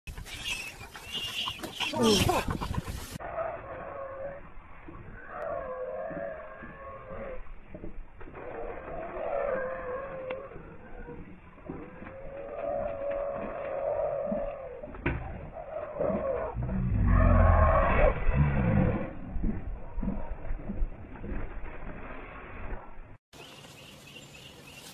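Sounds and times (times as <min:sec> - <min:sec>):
high-pitched animal calls: 0:00.1 - 0:07.5, 0:08.3 - 0:18.9
low rumble: 0:02.5 - 0:23.2.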